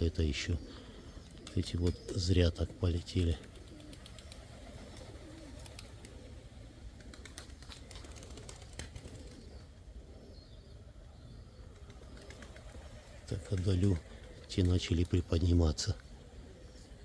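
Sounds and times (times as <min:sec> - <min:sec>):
low steady background noise: 0:00.0 - 0:17.0
pigeons cooing: 0:00.0 - 0:17.0.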